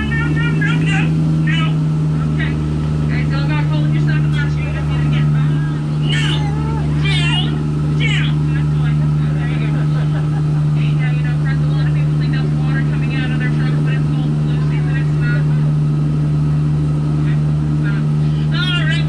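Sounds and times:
boat motor humming: 0.0s - 19.0s.

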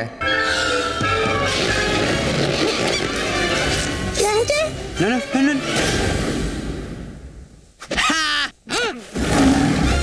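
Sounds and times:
trailer music: 0.2s - 7.1s.

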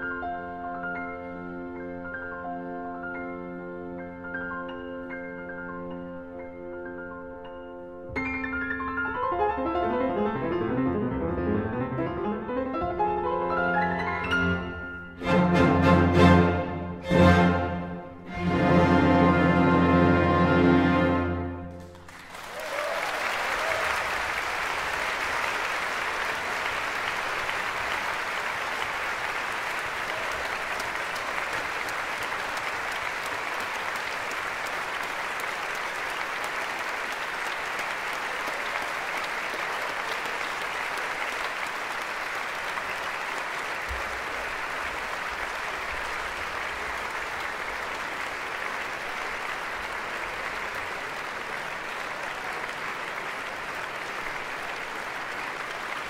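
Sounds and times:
concert audience applauding: 13.2s - 56.0s.

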